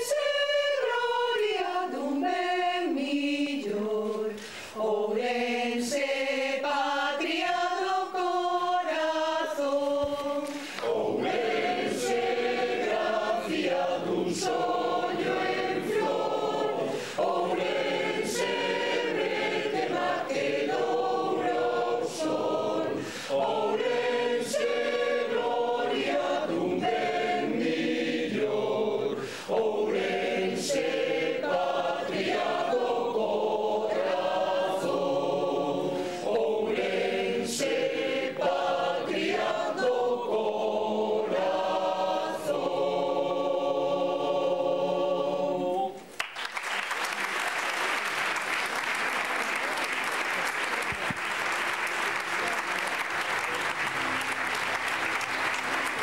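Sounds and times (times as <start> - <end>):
mixed choir singing: 0.0 - 46.1, 47.1 - 56.0.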